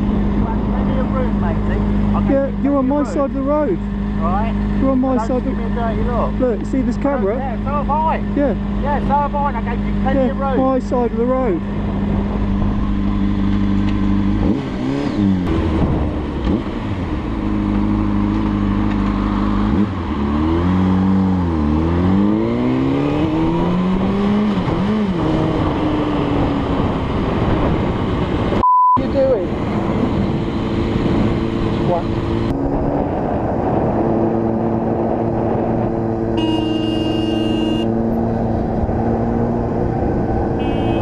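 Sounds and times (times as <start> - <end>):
motorcycle engine revving: 0.0 - 41.0
high censor beep: 28.6 - 29.0, 36.4 - 37.9.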